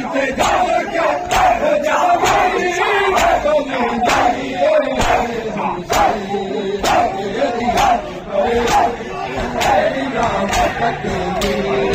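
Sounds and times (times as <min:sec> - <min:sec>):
men chanting together: 0:00.0 - 0:11.9
palms slapping chests: 0:02.2 - 0:11.9.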